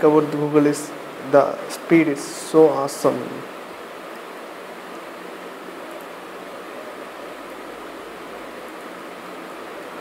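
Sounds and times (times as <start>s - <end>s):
background hiss: 0.0s - 10.0s
faint low hum: 0.0s - 10.0s.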